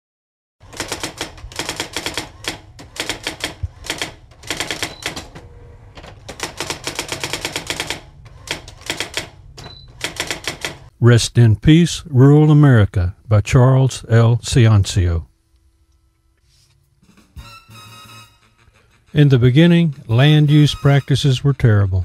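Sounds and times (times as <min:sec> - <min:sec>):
typewriter keys clacking: 0:06.3 - 0:09.3
typewriter bell ding: 0:17.4 - 0:18.6.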